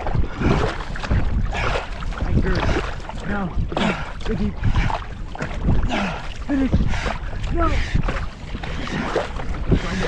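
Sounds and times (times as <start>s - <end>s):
paddles splashing in water: 0.0s - 10.0s
water rushing along hull: 0.0s - 10.0s
wind buffeting microphone: 0.0s - 10.0s.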